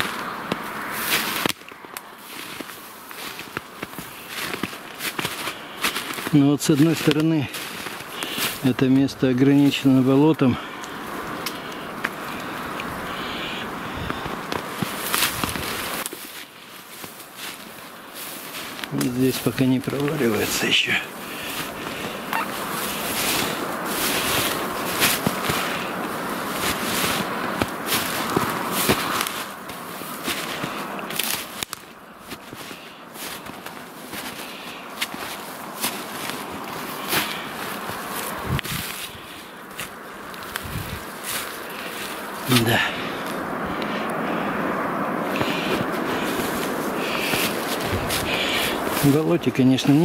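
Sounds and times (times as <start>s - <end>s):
footsteps through snowy brush: 0.0s - 50.0s
twigs crackling and snapping: 0.0s - 50.0s.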